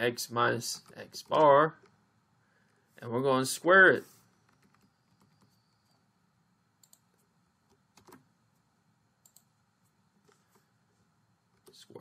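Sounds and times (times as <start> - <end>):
faint keyboard keystrokes: 6.8 - 8.2.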